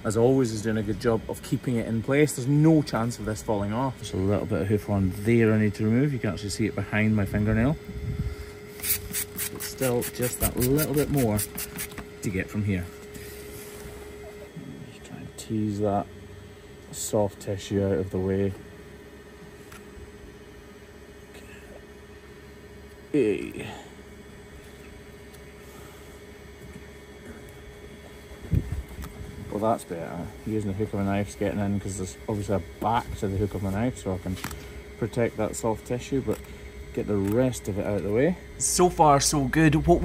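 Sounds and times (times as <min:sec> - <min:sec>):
faint steady hum: 0:00.0 - 0:40.0
spray bottle squirting water: 0:08.8 - 0:12.0.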